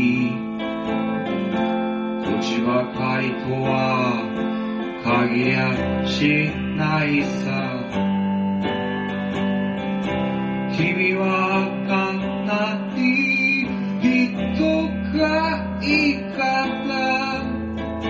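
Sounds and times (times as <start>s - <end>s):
person singing: 0.0s - 1.6s, 2.2s - 8.9s, 10.6s - 18.0s
acoustic guitar plucked and strummed: 0.0s - 18.0s.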